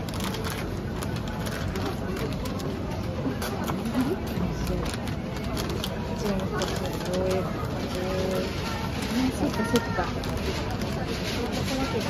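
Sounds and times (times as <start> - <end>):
wrapping paper crinkling: 0.0 - 12.0.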